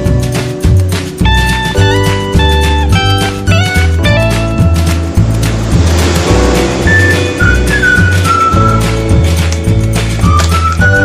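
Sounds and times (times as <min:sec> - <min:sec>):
background music with bass beat: 0:00.0 - 0:11.0
sliding high melody line: 0:03.9 - 0:09.3.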